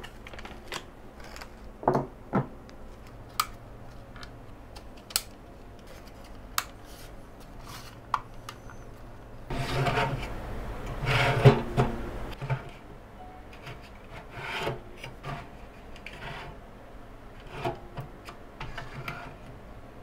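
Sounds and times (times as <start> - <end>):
drive tray scraping along guides: 9.5 - 12.8, 18.6 - 19.5.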